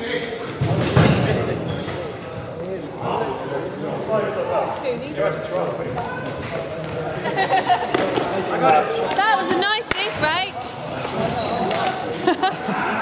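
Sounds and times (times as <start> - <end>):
trainers squeaking on floor: 1.6 - 2.2, 5.9 - 6.8, 7.9 - 12.0.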